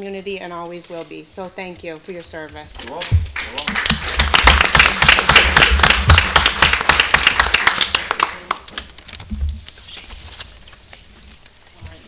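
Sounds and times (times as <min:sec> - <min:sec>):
applause: 0:03.0 - 0:09.1.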